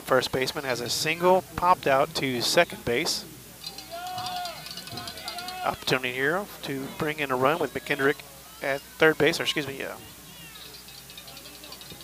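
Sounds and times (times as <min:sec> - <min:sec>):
distant voices calling out: 0:00.6 - 0:12.0.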